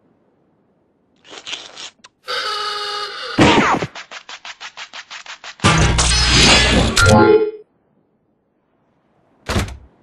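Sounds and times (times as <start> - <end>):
fast even rattle: 3.9 - 6.0.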